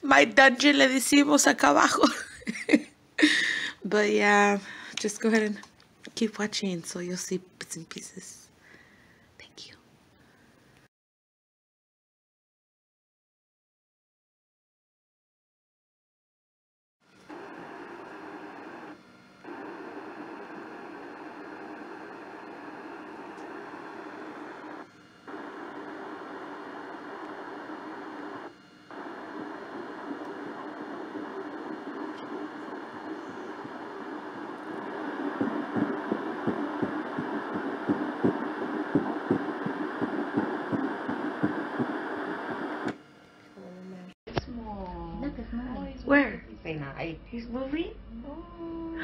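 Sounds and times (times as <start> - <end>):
fetal heartbeat pulse: 17.3 - 43.0.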